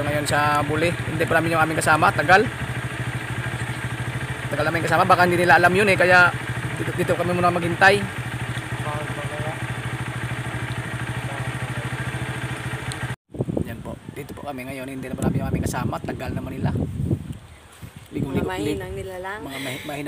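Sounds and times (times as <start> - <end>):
motorcycle engine idling: 0.0 - 13.2.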